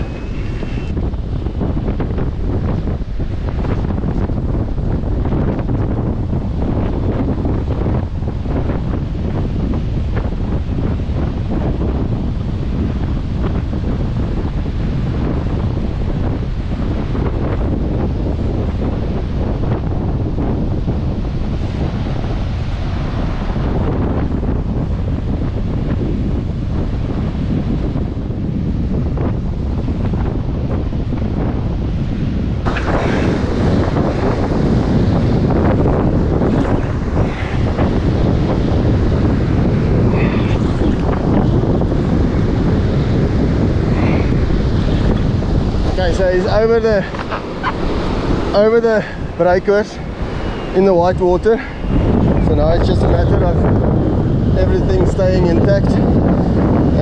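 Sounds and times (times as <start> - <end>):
surf breaking on beach: 0.0 - 57.0
wind buffeting microphone: 0.0 - 57.0.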